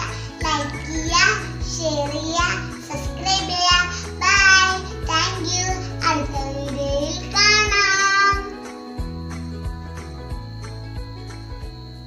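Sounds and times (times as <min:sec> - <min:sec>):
child singing: 0:00.0 - 0:08.7
background music: 0:00.0 - 0:12.0.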